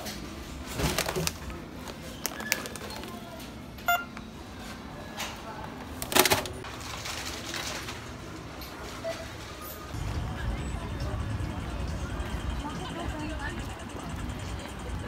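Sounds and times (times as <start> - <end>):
packaging rustling: 0.8 - 3.2
barcode scanner beep: 3.9 - 4.1.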